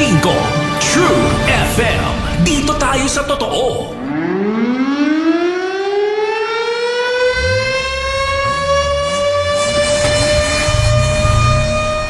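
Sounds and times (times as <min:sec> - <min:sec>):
siren winding up: 0:04.0 - 0:12.0.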